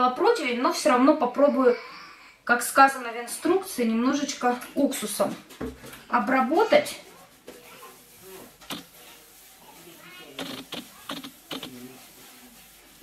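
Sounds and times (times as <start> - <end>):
wet pad rubbing on metal tray: 6.4 - 13.0
wet pad squeaking on metal: 8.7 - 9.3, 10.2 - 11.9.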